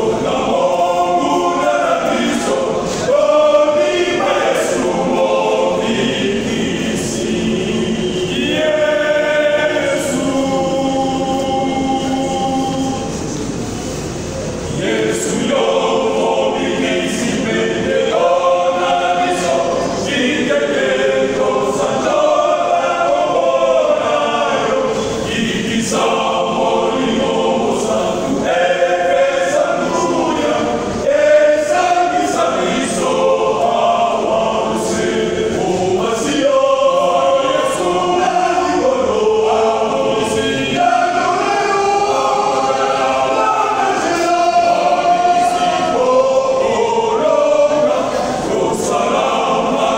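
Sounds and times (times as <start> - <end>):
men's vocal group singing: 0.0 - 13.6, 14.6 - 49.9.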